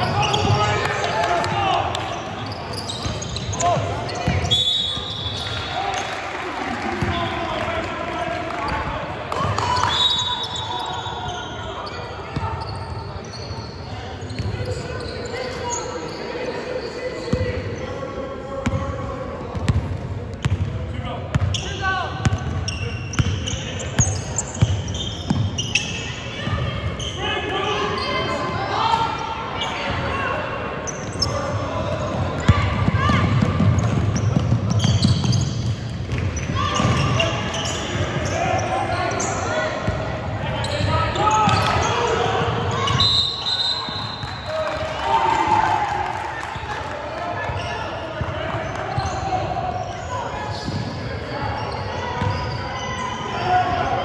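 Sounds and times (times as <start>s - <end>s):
basketball bouncing on court: 19.5s - 21.6s, 22.2s - 25.6s, 31.9s - 37.2s, 52.2s - 52.4s.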